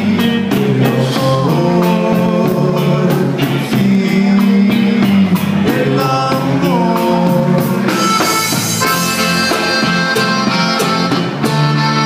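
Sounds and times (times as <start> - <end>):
steady beat: 0.0 - 12.0
button accordion melody: 7.9 - 12.0.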